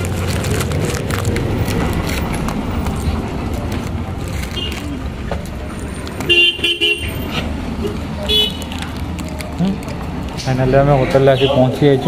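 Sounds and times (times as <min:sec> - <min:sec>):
traffic noise: 0:00.0 - 0:12.0
vehicle horn beeps: 0:06.3 - 0:07.2.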